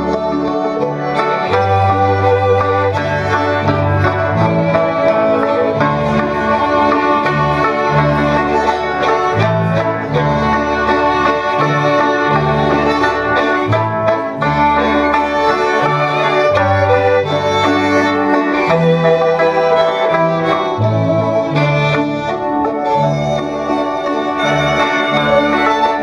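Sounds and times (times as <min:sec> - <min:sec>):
fiddle playing tune: 0:00.0 - 0:26.0
folk dance music: 0:00.0 - 0:26.0.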